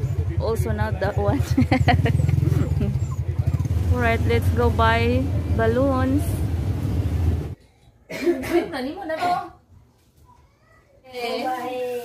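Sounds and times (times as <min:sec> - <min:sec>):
faint voices: 0:00.0 - 0:06.5
motor vehicle engine rumble: 0:00.0 - 0:07.6.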